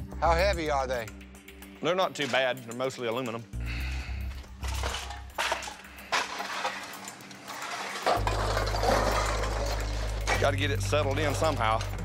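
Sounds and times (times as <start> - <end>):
background music with low bass: 0.0 - 12.0
metal clattering and clinking: 2.1 - 3.4, 4.3 - 12.0.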